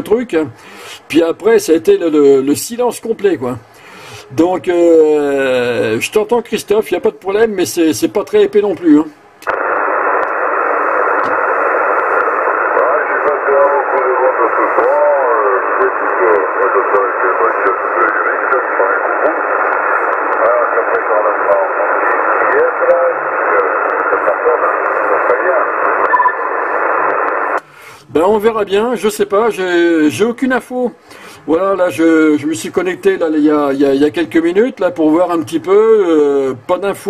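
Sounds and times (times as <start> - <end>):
steady radio band hiss: 0.0 - 37.0
weak radio voice: 12.4 - 26.9.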